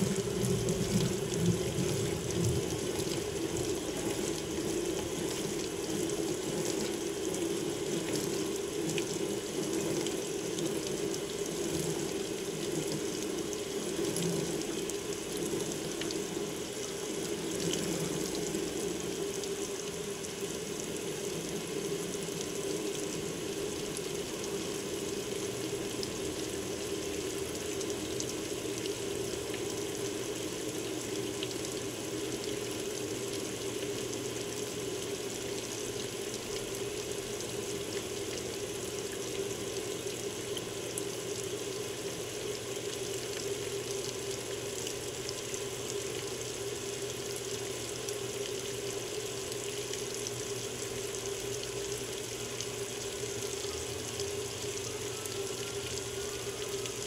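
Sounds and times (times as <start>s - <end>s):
water pouring into washer tub: 0.0s - 22.0s.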